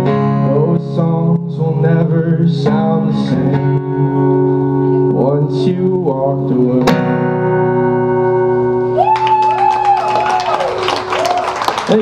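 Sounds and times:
audience whooping: 8.9 - 12.0
audience applause: 9.0 - 12.0.

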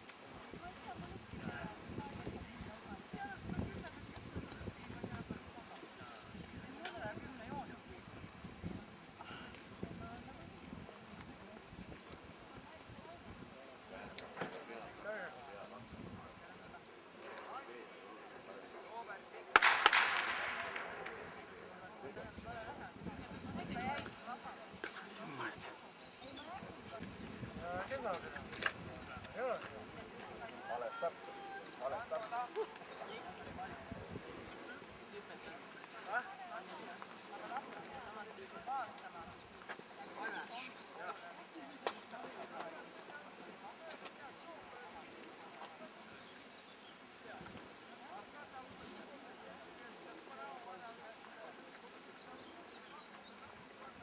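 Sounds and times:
people talking: 0.4 - 19.6, 20.5 - 46.3
starting pistol cracks: 19.6 - 21.2.

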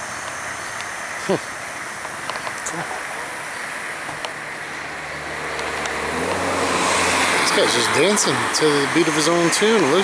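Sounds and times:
steady hiss: 0.0 - 10.0
vehicle engine running: 0.0 - 10.0.

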